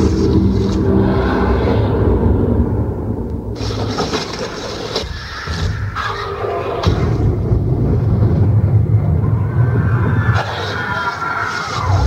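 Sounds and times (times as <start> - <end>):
low droning tones: 0.0 - 4.2
rumbling noise: 0.0 - 12.0.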